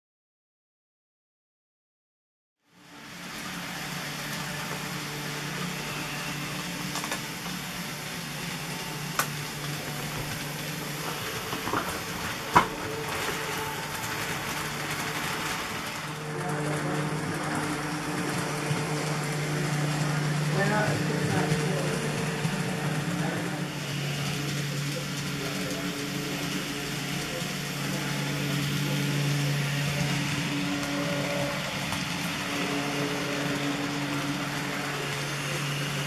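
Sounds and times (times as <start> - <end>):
model train motor whirring: 2.7 - 36.0
wheels rolling on rails: 2.9 - 36.0.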